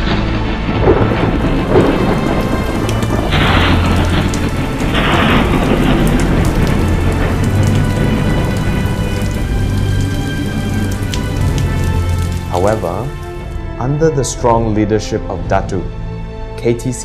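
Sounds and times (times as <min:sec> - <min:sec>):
thunder crack: 0:00.0 - 0:13.7
heavy rain: 0:00.0 - 0:14.4
background music: 0:00.0 - 0:17.0.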